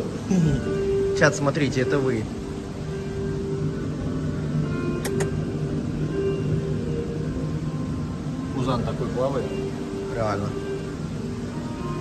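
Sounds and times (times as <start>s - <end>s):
faint background music: 0.0s - 12.0s
indoor hum: 0.0s - 12.0s
short clicks: 5.0s - 5.3s.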